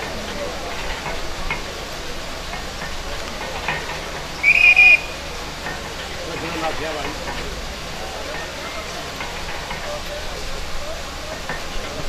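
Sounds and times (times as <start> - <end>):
crowd hubbub: 0.0 - 12.0
sharp whistle blown: 4.4 - 5.2.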